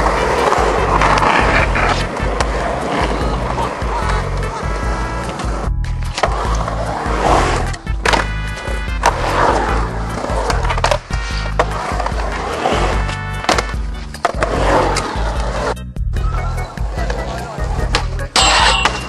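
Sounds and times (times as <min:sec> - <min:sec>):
skateboard clacking: 0:00.0 - 0:15.8, 0:16.7 - 0:19.0
background music with bass: 0:00.0 - 0:19.0
skateboard wheels rolling on concrete: 0:00.0 - 0:19.0.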